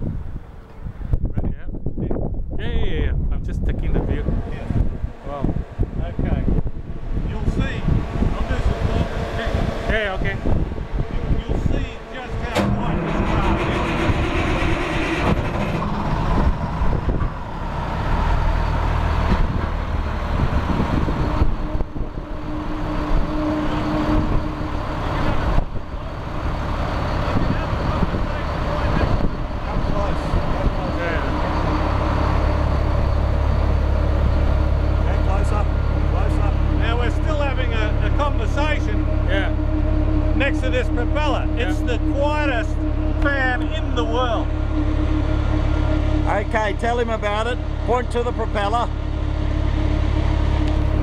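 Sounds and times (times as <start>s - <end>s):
hovercraft propeller and engine: 2.0s - 51.0s.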